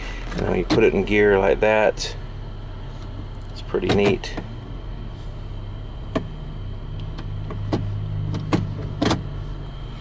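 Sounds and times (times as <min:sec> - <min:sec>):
idling car engine hum: 0:00.0 - 0:10.0.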